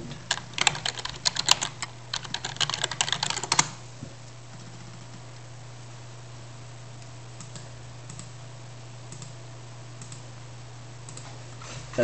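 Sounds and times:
steady low hum: 0.0 - 12.0
laptop keyboard typing: 0.3 - 3.8, 4.5 - 5.2.

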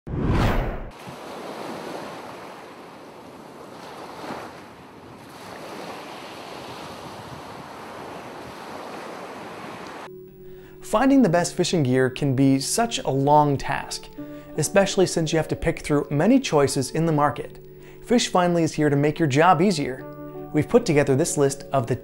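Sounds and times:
ocean waves washing: 0.4 - 10.1.

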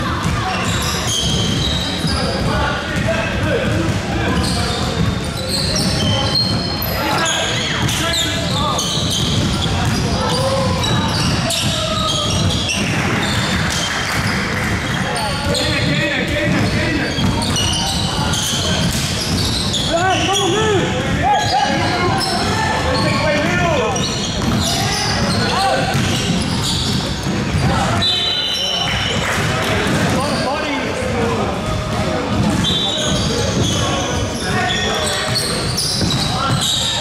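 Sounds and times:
sneakers squeaking on floor: 0.0 - 37.0
basketball dribbling: 0.1 - 30.4
players calling out: 0.6 - 37.0.

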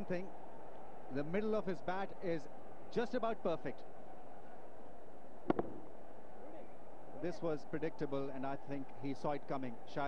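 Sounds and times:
stadium crowd noise: 0.0 - 10.0
cricket bat striking ball: 5.4 - 5.8.

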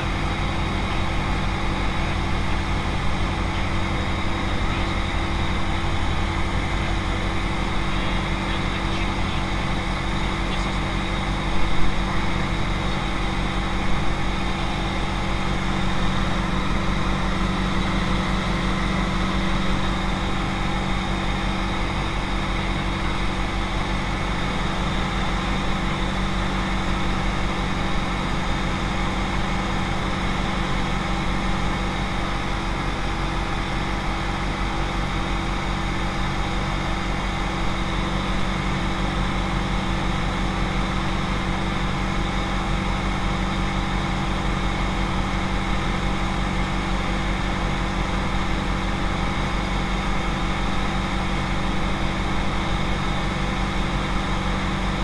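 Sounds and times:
propeller aircraft engine drone: 0.0 - 55.0.

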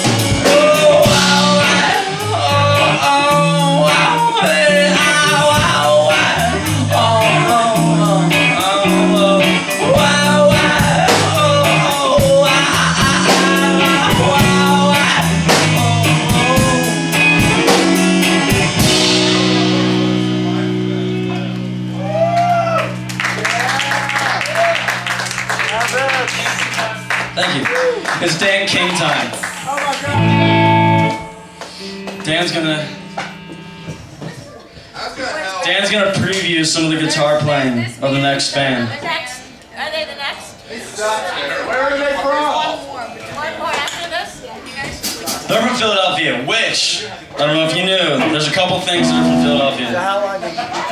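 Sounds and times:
drum kit beat: 0.0 - 34.6, 45.0 - 45.6, 48.9 - 50.0
electric guitar: 0.0 - 34.8, 48.2 - 50.9
man singing: 0.1 - 20.0, 48.9 - 49.8.

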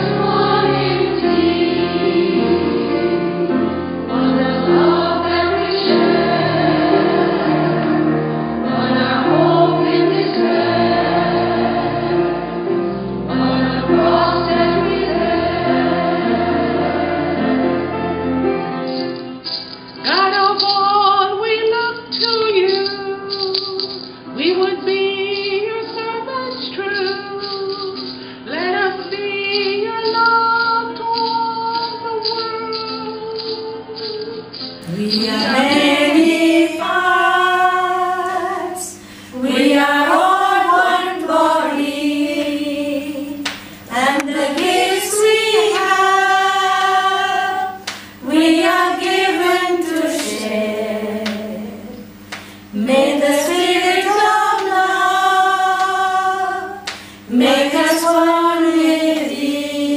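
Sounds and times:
women singing a hymn: 0.0 - 3.5, 4.1 - 17.9, 34.8 - 59.9
woman singing a hymn: 20.0 - 59.9.

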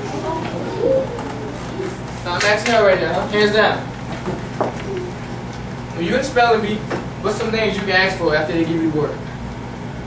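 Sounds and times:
children murmuring and calling out: 0.0 - 2.1.

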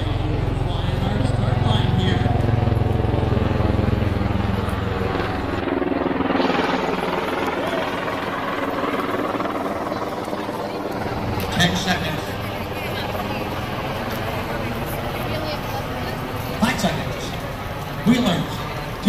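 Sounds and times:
aircraft rotors thudding overhead: 0.0 - 19.0.

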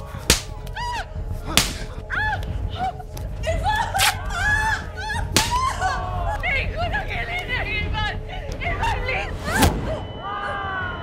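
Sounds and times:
sharp slap-like hits: 0.3 - 0.5
woman crying and screaming: 0.7 - 1.3, 1.9 - 10.9.

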